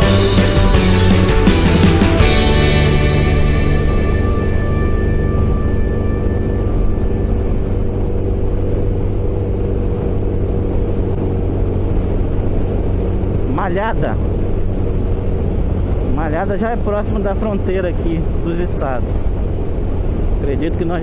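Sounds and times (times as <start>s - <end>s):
background music: 0.0s - 10.3s
scooter engine running: 0.0s - 13.5s.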